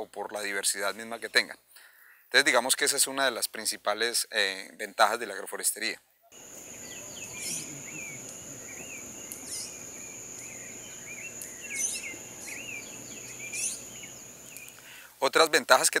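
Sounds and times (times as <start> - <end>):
birds chirping: 6.4 - 15.0
high sweeping bird calls: 6.4 - 15.0
insect drone: 6.4 - 15.0.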